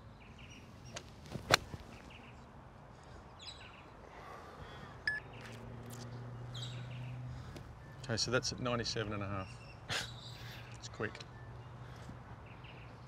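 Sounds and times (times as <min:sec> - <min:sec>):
golf club striking ball: 0:00.9 - 0:01.8.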